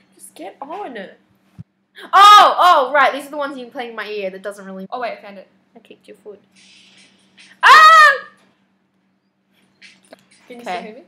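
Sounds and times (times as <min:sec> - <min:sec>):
woman squealing: 0:07.6 - 0:08.4.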